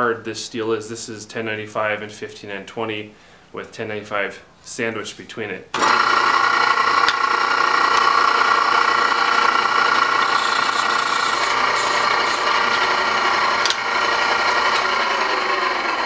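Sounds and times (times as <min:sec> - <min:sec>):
drill press bit rubbing steel: 0:07.0 - 0:16.0.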